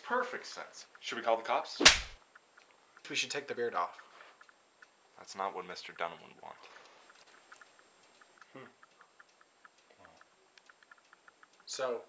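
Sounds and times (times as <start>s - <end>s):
faint quick ticking: 2.2s - 12.0s.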